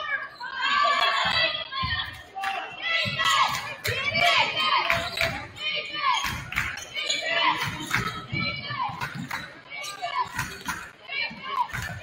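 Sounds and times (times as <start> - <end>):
players and spectators voices: 0.0 - 12.0.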